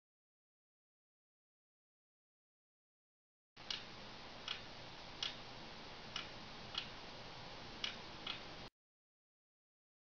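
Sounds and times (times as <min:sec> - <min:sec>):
clock ticking: 0:03.6 - 0:05.5, 0:06.1 - 0:07.0, 0:07.8 - 0:08.6
steady hiss: 0:03.6 - 0:08.7.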